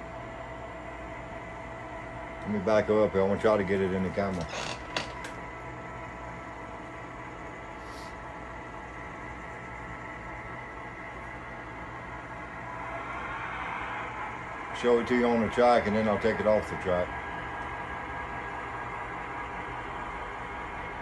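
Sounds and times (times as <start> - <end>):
model train engine sound hum: 10.5 - 21.0.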